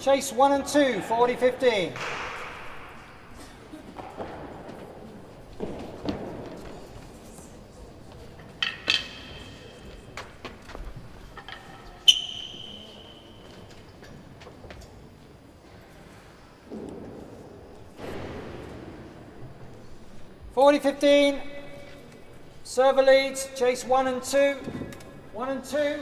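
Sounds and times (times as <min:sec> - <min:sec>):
echoing knocks and clicks: 0:01.0 - 0:04.8.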